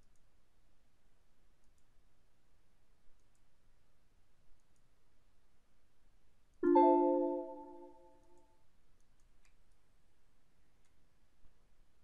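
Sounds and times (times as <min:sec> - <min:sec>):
computer mouse clicks: 0:00.0 - 0:00.3, 0:01.6 - 0:02.0, 0:03.1 - 0:03.5, 0:04.5 - 0:04.9, 0:09.0 - 0:09.9.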